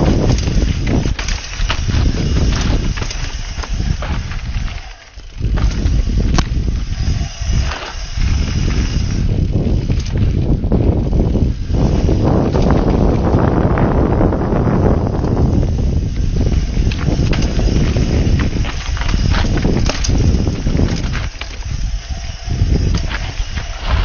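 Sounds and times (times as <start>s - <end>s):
bike rattling and knocking: 0.0s - 24.0s
tyres running over dirt and stones: 0.0s - 24.0s
wind rushing over microphone: 0.0s - 24.0s.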